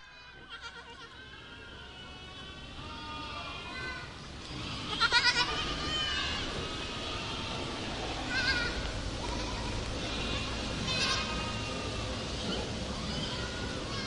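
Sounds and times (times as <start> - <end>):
young goats bleating: 0.0 - 14.0.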